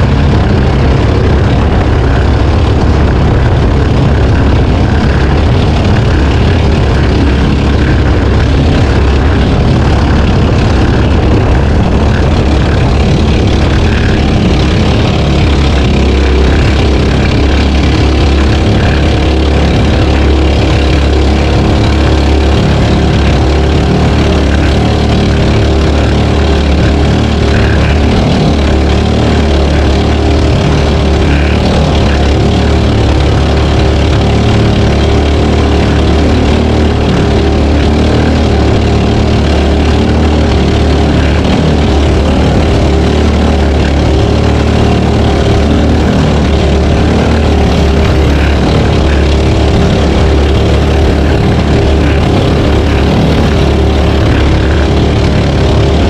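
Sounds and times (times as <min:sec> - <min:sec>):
boat engine running: 0:00.0 - 0:56.0.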